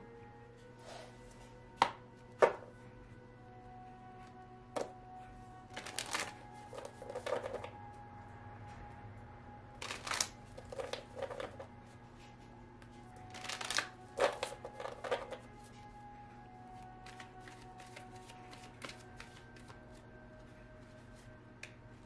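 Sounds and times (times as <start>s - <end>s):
cards being shuffled: 5.7s - 7.7s, 9.8s - 11.7s, 13.2s - 15.7s, 16.8s - 20.0s.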